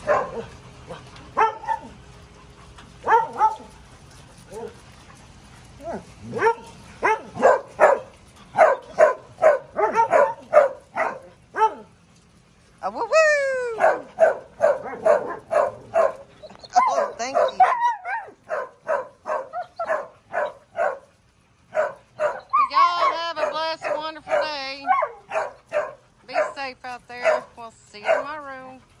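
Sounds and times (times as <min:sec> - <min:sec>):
dogs barking rapidly: 0:00.0 - 0:02.0, 0:03.0 - 0:03.8, 0:05.8 - 0:11.9, 0:13.8 - 0:28.8.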